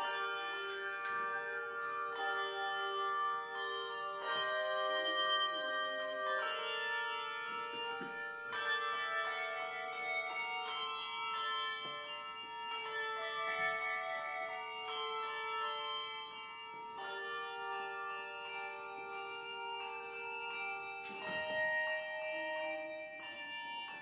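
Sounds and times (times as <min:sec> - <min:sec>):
handbell chords ringing: 0:00.0 - 0:24.0.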